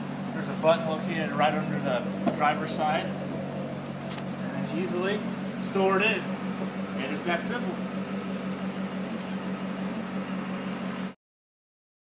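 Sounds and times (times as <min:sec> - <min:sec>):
low mechanical hum: 0:00.0 - 0:11.2.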